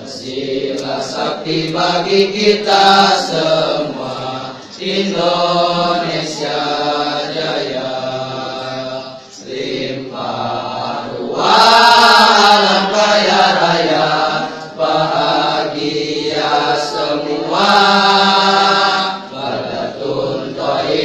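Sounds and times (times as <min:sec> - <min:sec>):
choir of young men singing: 0:00.0 - 0:21.0.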